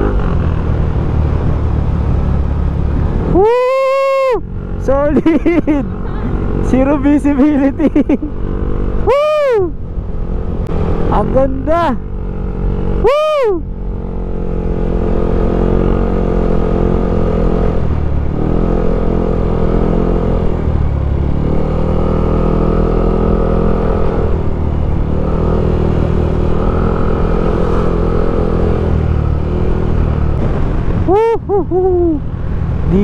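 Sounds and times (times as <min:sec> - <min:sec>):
motorcycle engine running: 0:00.0 - 0:33.0.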